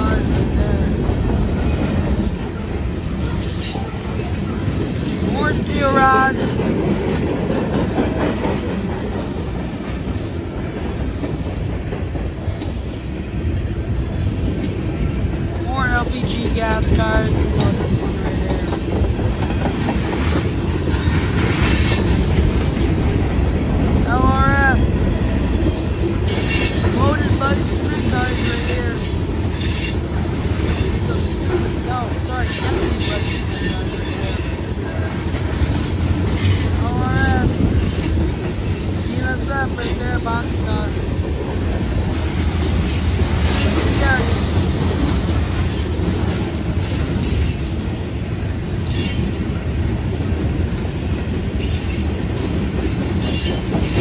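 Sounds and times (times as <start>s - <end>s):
freight train wheels rumbling on rail: 0.0s - 54.0s
train wheels squealing: 3.3s - 5.2s, 20.9s - 22.2s, 26.2s - 27.0s, 28.2s - 31.5s, 32.4s - 35.0s, 35.8s - 39.1s, 47.2s - 47.9s, 48.8s - 50.0s, 51.6s - 54.0s.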